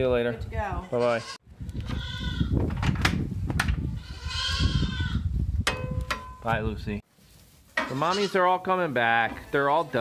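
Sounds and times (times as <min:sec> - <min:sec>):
goat bleating: 0:00.8 - 0:02.5, 0:04.0 - 0:05.2, 0:07.9 - 0:08.5.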